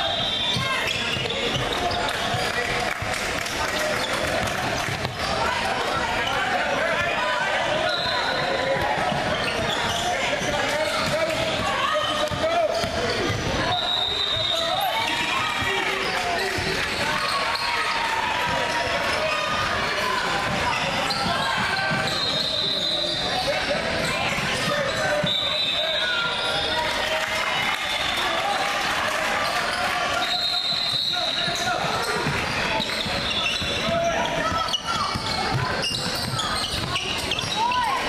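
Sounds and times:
indistinct chatter and calls: 0.0s - 38.0s.

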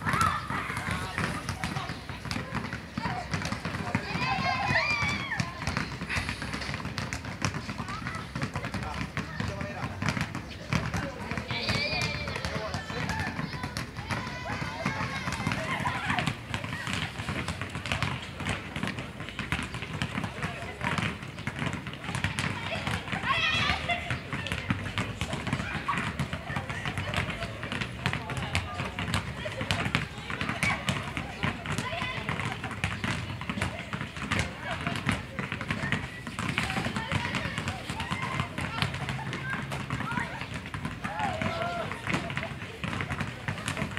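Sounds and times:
basketballs bouncing on concrete: 0.0s - 43.9s
students' voices: 0.0s - 43.9s.

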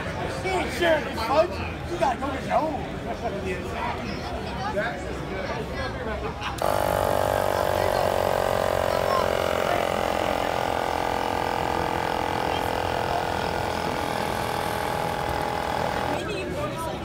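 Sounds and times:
air compressor whirring: 6.6s - 17.0s.

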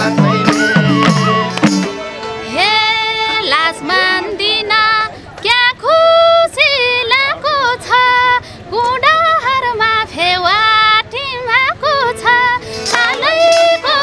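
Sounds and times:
woman singing folk song solo: 2.5s - 14.0s.

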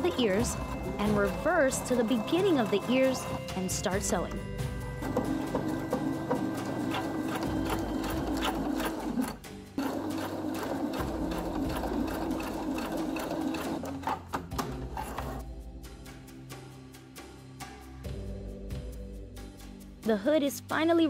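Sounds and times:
electric sewing machine stitching: 5.0s - 14.2s.

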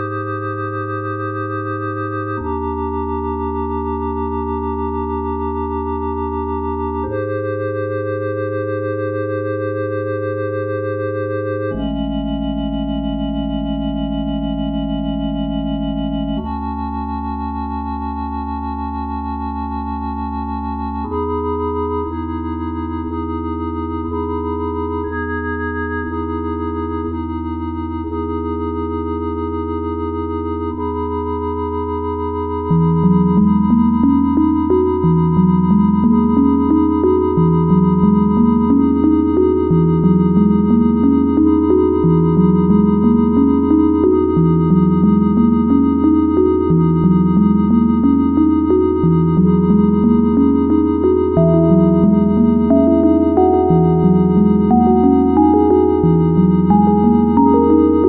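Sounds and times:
organ-like synthesizer chords: 0.0s - 58.0s
low bass tone: 11.6s - 28.2s, 33.0s - 58.0s
synthesizer drone: 49.7s - 58.0s
rising synthesizer notes: 50.2s - 58.0s.

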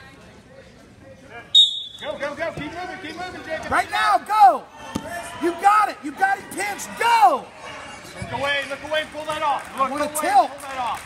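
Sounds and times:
referee's whistle blast: 1.5s - 2.2s.

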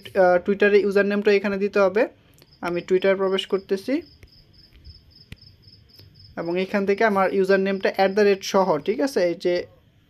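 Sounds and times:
cricket chirping: 2.4s - 8.4s.

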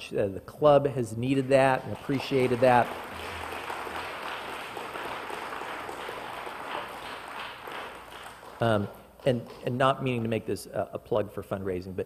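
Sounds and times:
congregation applauding: 1.4s - 9.6s.

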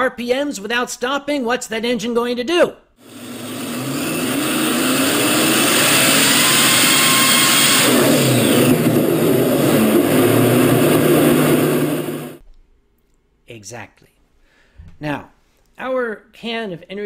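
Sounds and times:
engine revving at high revs: 3.0s - 12.4s
engine bursting into flame: 3.2s - 12.4s.

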